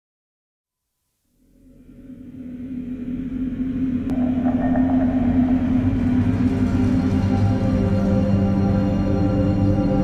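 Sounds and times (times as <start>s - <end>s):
ominous film score drone: 1.4s - 10.0s.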